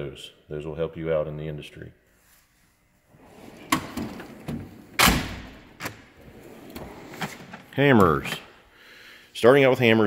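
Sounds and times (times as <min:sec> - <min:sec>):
drawers sliding on runners: 0:03.2 - 0:05.1, 0:05.8 - 0:07.7
drawer shutting with a clunk: 0:03.4 - 0:07.6.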